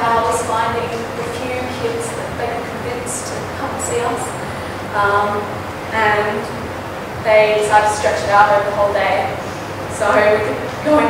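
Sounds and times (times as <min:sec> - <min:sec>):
woman speaking: 0:00.0 - 0:06.5, 0:07.2 - 0:11.0
background hiss: 0:00.0 - 0:11.0.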